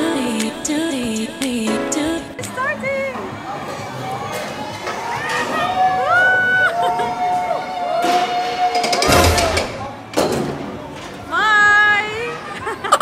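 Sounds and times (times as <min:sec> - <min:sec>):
riders screaming: 0:04.7 - 0:09.8.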